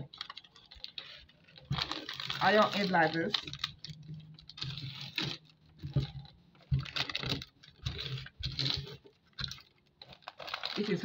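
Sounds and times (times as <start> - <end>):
paper rustling and crinkling: 0.0 - 11.0.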